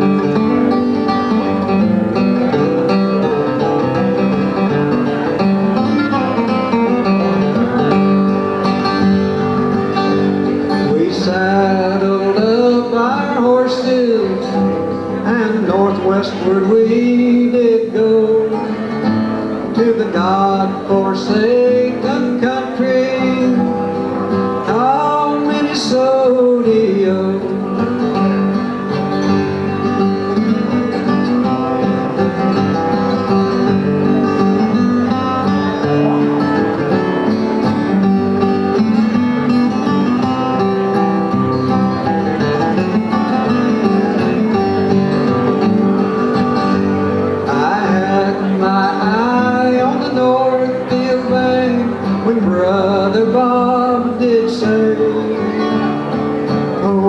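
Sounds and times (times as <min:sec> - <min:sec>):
acoustic guitars playing: 0:00.0 - 0:57.0.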